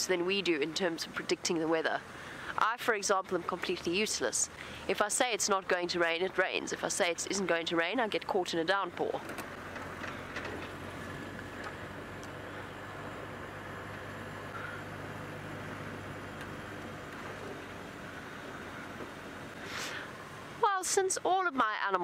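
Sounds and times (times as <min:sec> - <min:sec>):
road noise on dirt track: 0:00.0 - 0:22.0
vehicle engine running: 0:00.0 - 0:22.0.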